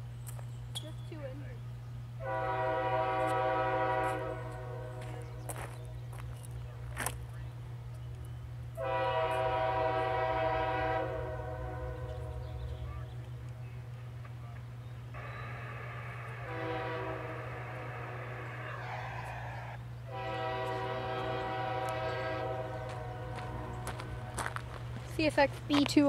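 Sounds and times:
locomotive air horn blasts: 2.2s - 5.4s, 8.7s - 12.8s, 15.1s - 18.8s, 20.0s - 24.6s.

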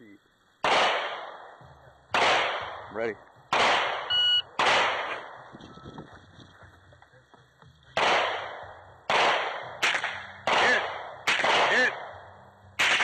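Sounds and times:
gunshots with ringing echo: 0.6s - 5.5s, 7.9s - 13.0s
shot timer beep: 4.1s - 4.5s.

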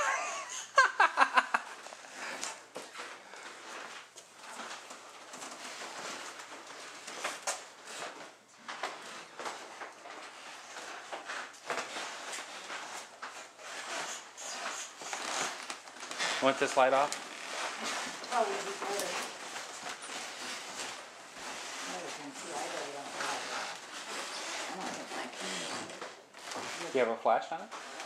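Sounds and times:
people moving about: 1.1s - 27.1s.

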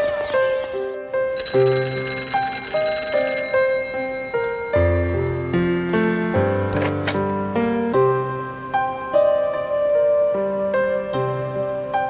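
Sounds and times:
slow background music: 0.0s - 12.0s
bell-like ringing: 1.4s - 5.5s.

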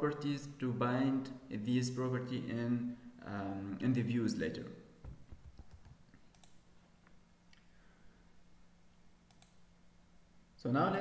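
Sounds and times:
computer mouse double click: 9.3s - 9.6s.

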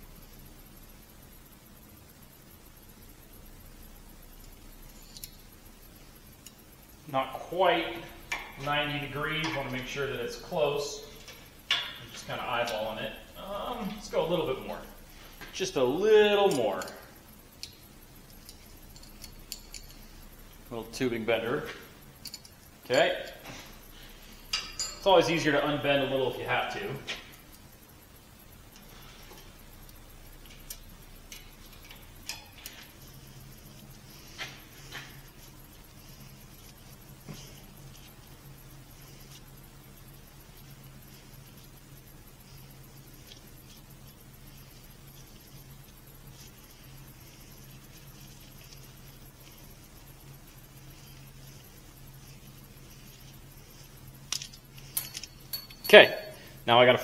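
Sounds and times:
steady low hum: 0.0s - 57.0s
metallic clicks and taps: 17.6s - 17.8s.

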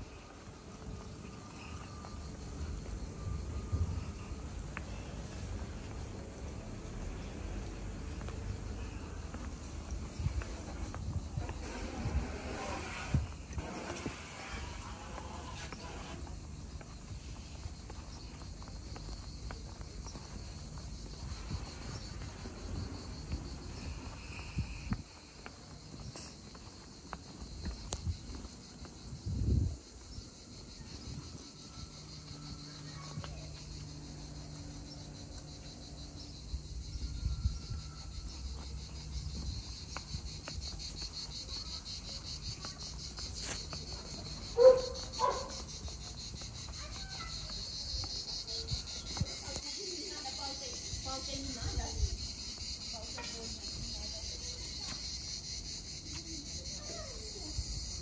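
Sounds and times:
insects trilling: 0.0s - 58.0s.

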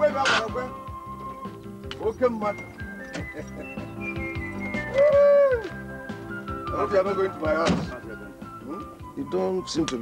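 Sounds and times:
film music with held tones: 0.0s - 10.0s
car door shutting: 7.6s - 8.1s.

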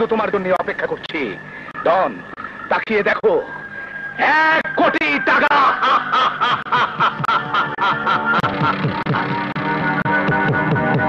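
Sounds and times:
man laughing theatrically: 5.5s - 9.5s.

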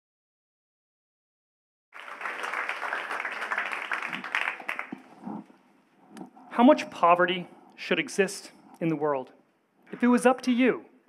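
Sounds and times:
audience applauding: 2.0s - 5.5s.

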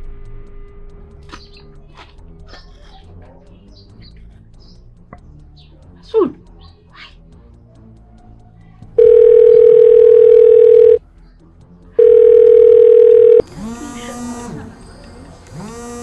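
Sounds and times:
telephone ringback tone: 9.0s - 11.0s, 12.0s - 13.4s.

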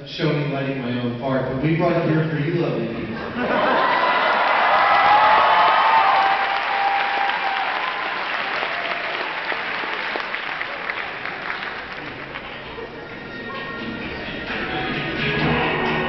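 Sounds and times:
audience applauding and cheering: 3.6s - 13.7s.

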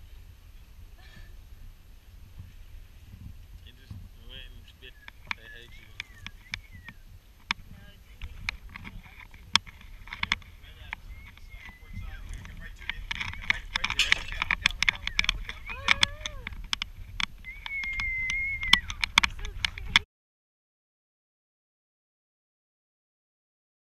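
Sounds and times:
wind and water rumble: 0.0s - 20.0s
sharp knocks and clicks: 8.2s - 20.0s
person calling out: 15.7s - 16.5s.

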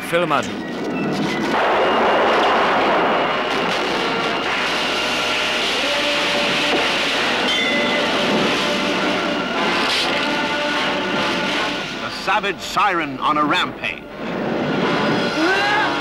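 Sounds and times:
loud steady rushing noise: 0.0s - 16.0s.

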